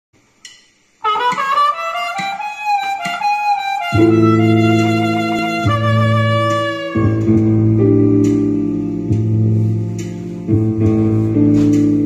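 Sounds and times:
harmonica playing slow melody: 0:01.0 - 0:08.2
low backing chord: 0:01.0 - 0:12.0.

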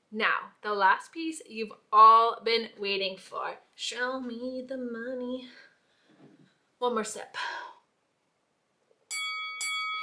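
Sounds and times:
bell-like chime: 0:09.1 - 0:10.0.

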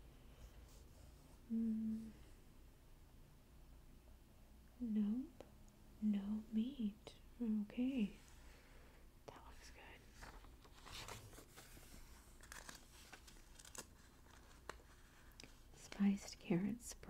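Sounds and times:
magazine page turning: 0:10.1 - 0:15.5.

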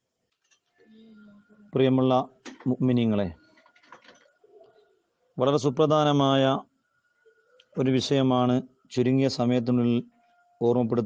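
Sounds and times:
man speaking in drawn-out tones: 0:01.8 - 0:03.4, 0:05.4 - 0:06.6, 0:07.8 - 0:10.0, 0:10.6 - 0:11.0.

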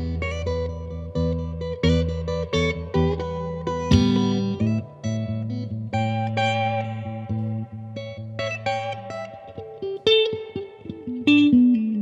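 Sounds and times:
electric guitar picking single notes: 0:00.0 - 0:12.0.

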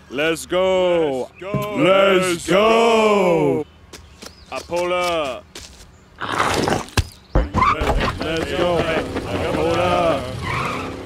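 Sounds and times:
cartoon tyre screech: 0:09.7 - 0:11.0.

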